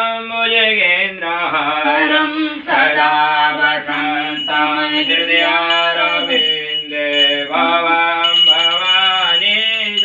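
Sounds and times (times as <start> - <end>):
man chanting melodically: 3.2 - 10.0.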